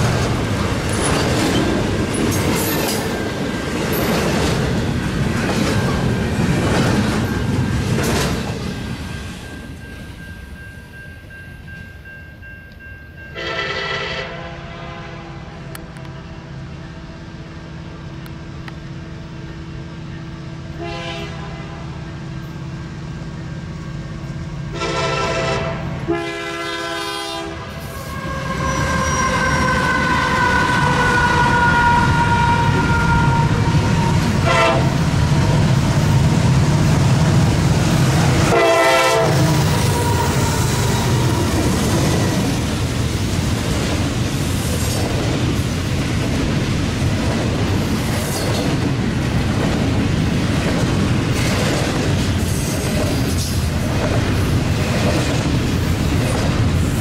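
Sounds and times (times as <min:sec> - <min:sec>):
train wheel clatter: 0:00.0 - 0:09.9, 0:35.2 - 0:57.0
locomotive air horn blasts: 0:13.4 - 0:15.8, 0:20.8 - 0:22.0, 0:24.7 - 0:35.0, 0:38.4 - 0:41.6
locomotive engine rumble: 0:27.8 - 0:44.4
high drawn-out squeal: 0:27.9 - 0:34.3.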